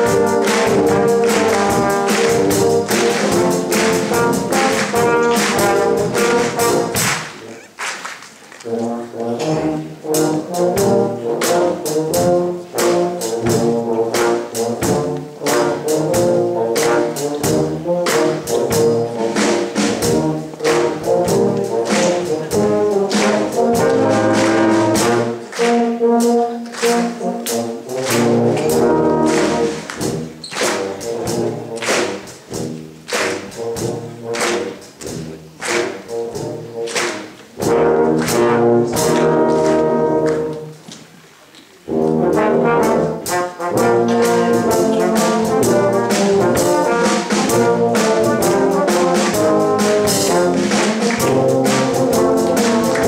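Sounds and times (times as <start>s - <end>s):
drum kit hits: 0.0s - 7.4s
brass band playing lively piece: 0.0s - 53.0s.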